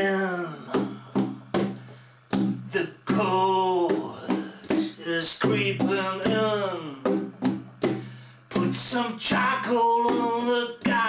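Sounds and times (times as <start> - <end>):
man singing: 0.0 - 1.8, 2.6 - 7.6, 8.5 - 11.0
frame drum strokes: 0.7 - 11.0.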